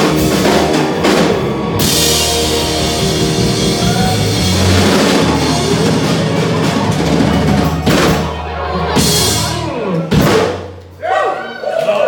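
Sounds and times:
drum kit: 0.0 - 11.0
rock band playing loudly: 0.0 - 11.0.

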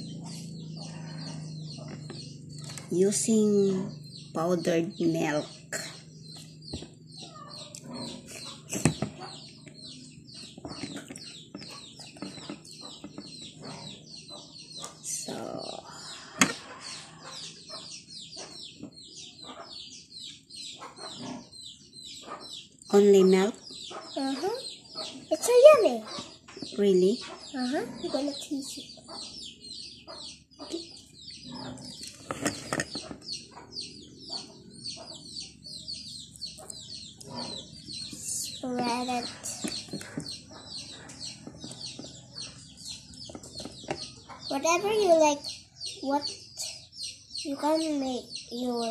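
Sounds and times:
birds chirping: 0.0 - 48.9.

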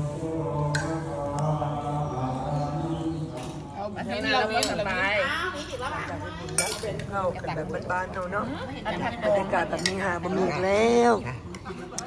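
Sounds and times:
monk chanting in low voice: 0.0 - 4.5.

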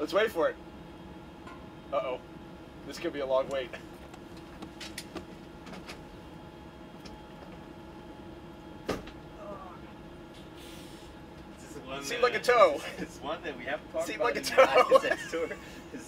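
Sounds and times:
ventilation fans humming: 0.0 - 16.0.

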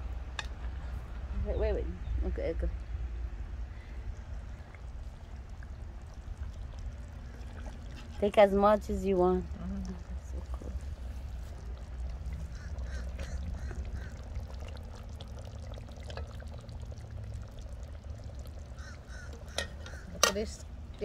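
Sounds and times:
steady low rumble: 0.0 - 21.0
ladle scooping sloshing liquid: 4.2 - 20.2
ladle clinking against pot: 19.4 - 20.5.

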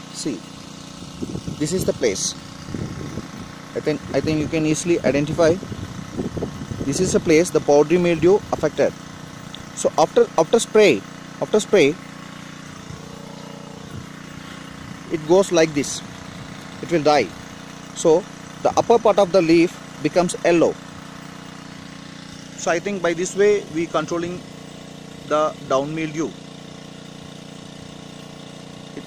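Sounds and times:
engine humming: 0.0 - 29.0
machine droning: 0.0 - 29.0.

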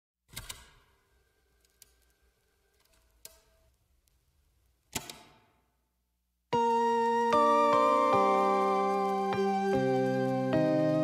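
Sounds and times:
record hiss: 0.3 - 6.6.

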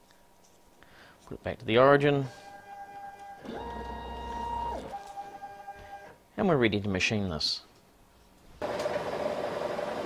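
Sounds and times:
machine motors whining: 2.0 - 6.2.

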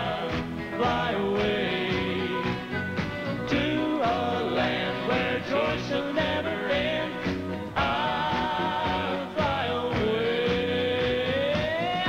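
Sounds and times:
male vocal quartet singing: 0.0 - 2.8, 3.4 - 12.0
upright piano: 0.0 - 12.0.

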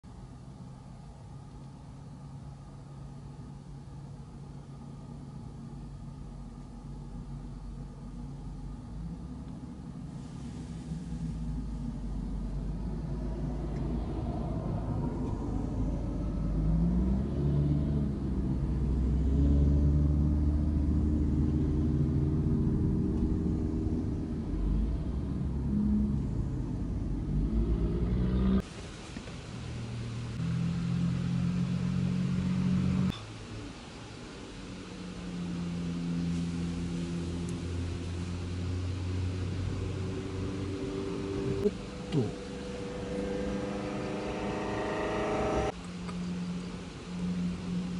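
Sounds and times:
cars driving past: 9.2 - 47.9
steady engine note: 35.4 - 45.8.

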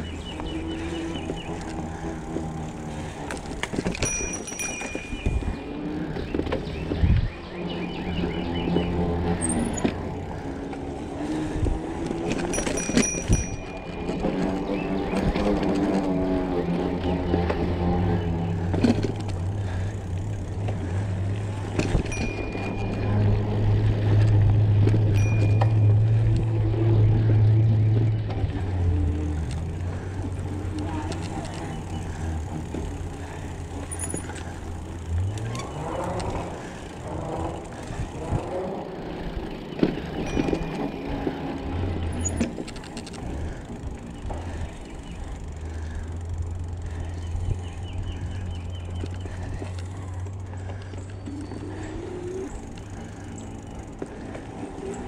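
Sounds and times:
bike tyre and frame rattle: 0.0 - 55.0
low wind rumble on microphone: 4.8 - 10.5, 11.2 - 33.5.

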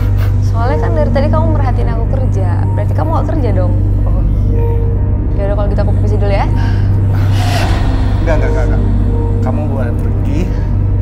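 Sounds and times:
steady low hum: 0.0 - 11.0
rising vocal sound: 7.1 - 9.4.

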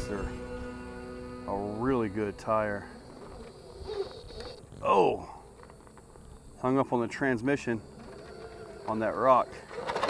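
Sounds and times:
electric motor whine: 0.0 - 6.7, 7.5 - 10.0.

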